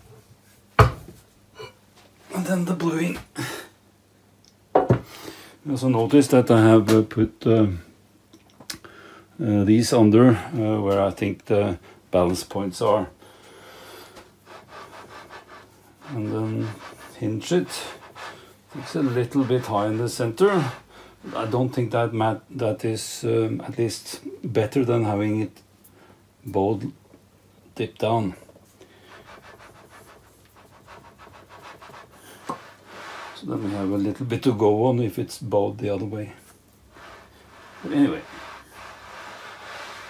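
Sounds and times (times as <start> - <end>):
straightedge rubbing on metal: 14.4 - 21.6, 29.1 - 34.1, 36.9 - 40.0
metal plate scratching on metal: 14.5 - 21.6, 37.0 - 40.0.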